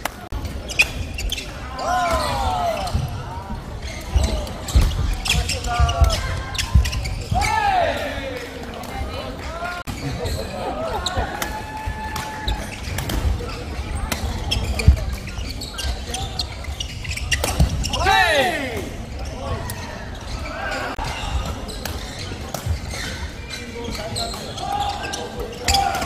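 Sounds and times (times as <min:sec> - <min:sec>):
shoes squeaking on court floor: 0:00.4 - 0:26.0.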